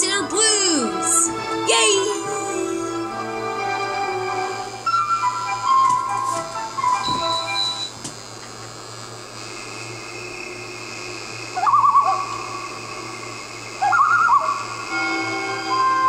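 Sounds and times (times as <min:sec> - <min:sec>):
warbling whistle-like calls: 0:11.6 - 0:12.6, 0:13.8 - 0:16.0.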